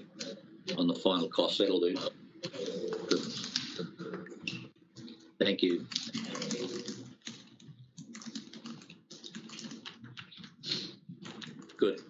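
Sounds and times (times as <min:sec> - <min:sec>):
computer keyboard typing: 0:02.4 - 0:03.8, 0:05.8 - 0:12.0.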